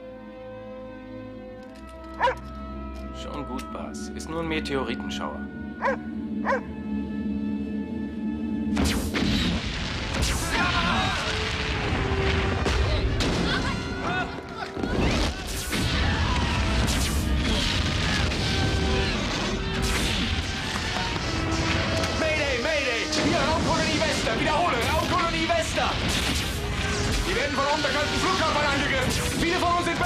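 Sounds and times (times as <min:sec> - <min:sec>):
explosions and crashes: 0:08.8 - 0:22.1, 0:23.0 - 0:30.0.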